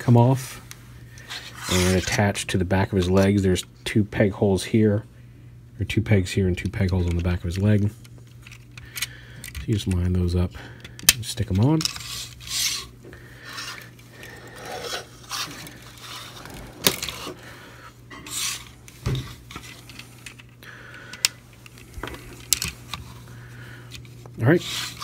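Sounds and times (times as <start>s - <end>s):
plastic parts rubbing and scraping: 1.2s - 2.3s, 11.4s - 17.4s, 18.1s - 20.6s, 23.9s - 25.0s.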